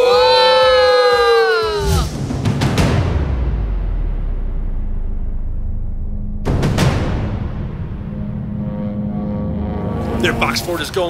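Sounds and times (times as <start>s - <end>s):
cinematic rumble: 3.0s - 11.0s.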